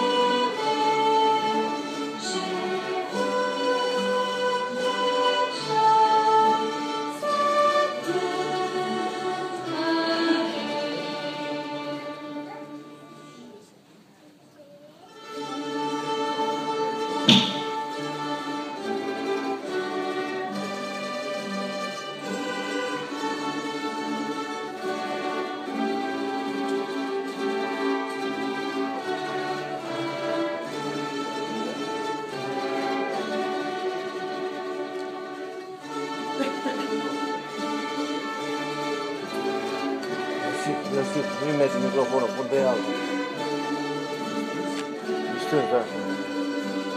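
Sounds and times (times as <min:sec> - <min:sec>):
orchestra with bowed strings: 0:00.0 - 0:13.8, 0:15.0 - 0:46.9
sharp knock: 0:17.2 - 0:17.7.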